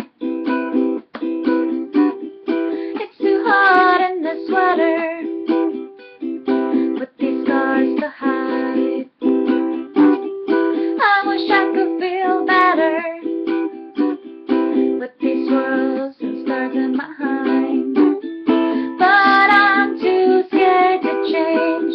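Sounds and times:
ukulele chords strummed: 0:00.0 - 0:21.9
person singing: 0:00.8 - 0:21.9.

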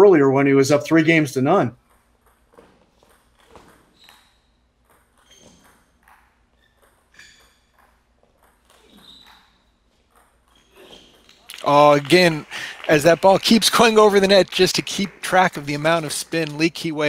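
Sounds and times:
table tennis ball pinging: 0:01.8 - 0:11.6.

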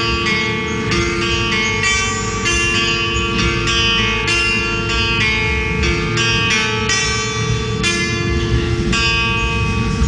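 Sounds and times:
acoustic guitar strummed chords: 0:00.0 - 0:10.0.

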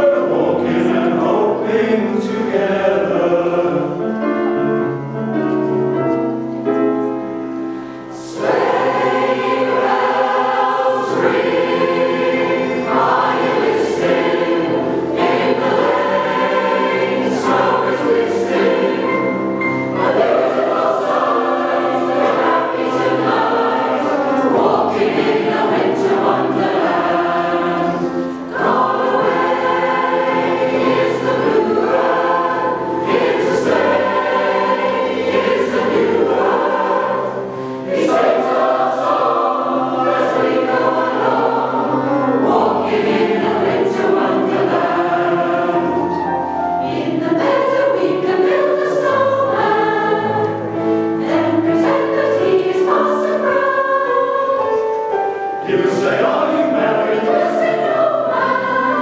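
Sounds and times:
mixed choir singing in harmony: 0:00.0 - 0:59.0.

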